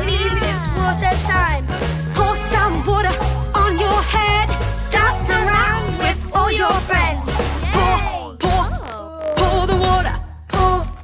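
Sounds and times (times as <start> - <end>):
children's pop song: 0.0 - 11.0.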